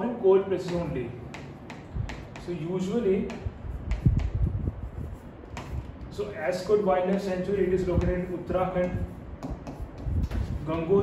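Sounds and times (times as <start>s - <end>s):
pen scratching on board: 3.2s - 11.0s.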